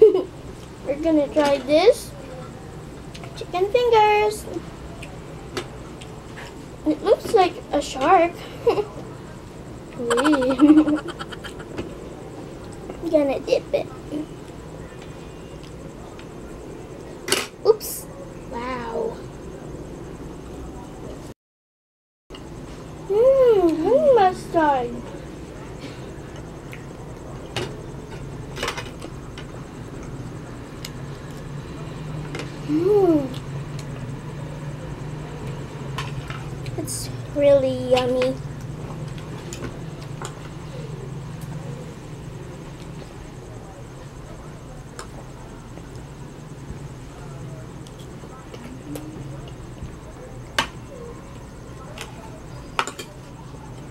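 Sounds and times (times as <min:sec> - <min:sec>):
low background hum: 0:00.0 - 0:21.4, 0:22.3 - 0:53.9.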